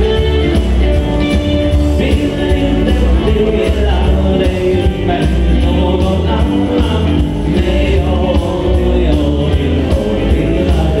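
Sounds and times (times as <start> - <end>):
dance-band music with singer: 0.0 - 11.0.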